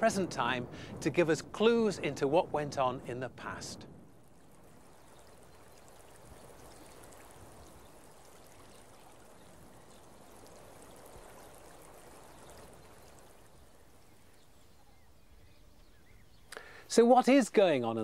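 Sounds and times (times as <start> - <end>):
small waves lapping on shore: 4.1 - 16.2.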